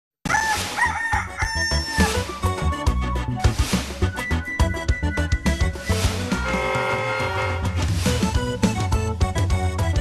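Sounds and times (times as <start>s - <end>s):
rooster crowing: 0.3s - 2.2s
music jingle: 2.4s - 10.0s.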